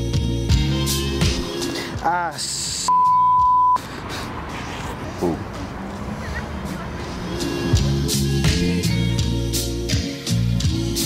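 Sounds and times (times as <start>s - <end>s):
background music: 0.0s - 2.9s, 6.5s - 11.0s
traffic noise: 1.3s - 9.9s
censor bleep tone: 2.9s - 3.8s.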